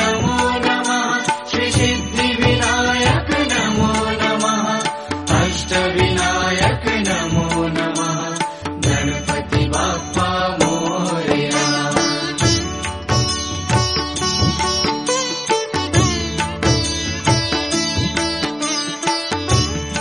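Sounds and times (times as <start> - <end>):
chanting voices: 0.0 - 12.7
devotional mantra music: 0.0 - 13.7.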